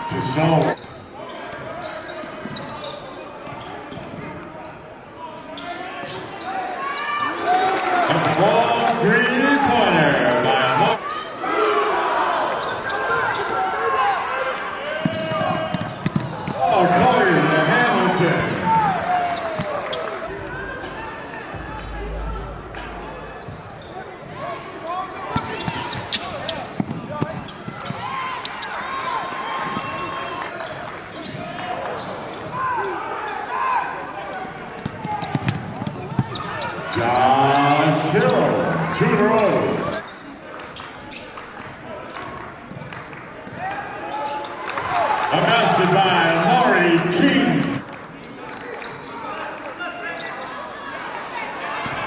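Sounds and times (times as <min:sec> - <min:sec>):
sneakers squeaking: 0:00.3 - 0:07.0, 0:12.6 - 0:13.6, 0:15.0 - 0:16.7, 0:17.9 - 0:24.4, 0:25.0 - 0:32.9, 0:34.4 - 0:38.3, 0:39.3 - 0:44.8, 0:48.2 - 0:49.3.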